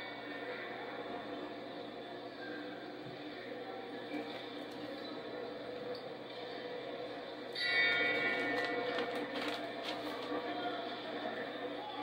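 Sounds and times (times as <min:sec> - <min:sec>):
boxing ring bell ringing: 0:07.5 - 0:09.3.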